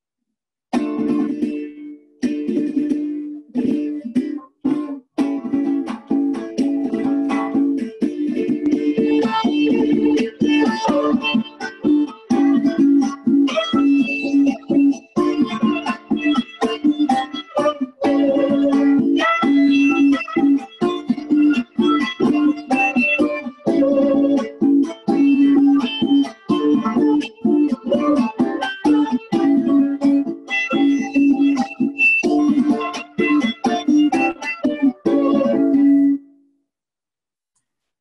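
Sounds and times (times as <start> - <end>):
cuatro strummed chords: 0.7 - 36.3
violin melody: 2.5 - 36.2.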